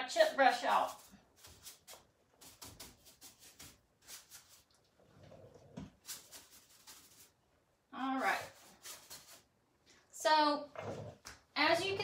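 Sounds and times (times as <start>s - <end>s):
paintbrush scratchy strokes on wood: 0.2s - 7.4s, 8.1s - 9.5s.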